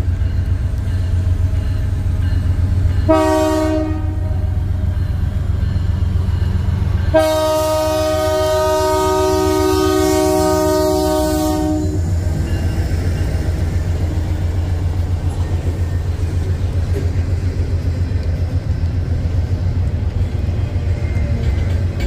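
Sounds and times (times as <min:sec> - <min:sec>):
rumble of passing train: 0:00.0 - 0:22.0
locomotive air horn chord: 0:03.1 - 0:04.6, 0:07.1 - 0:12.0
train wheels clattering on rails: 0:11.6 - 0:22.0.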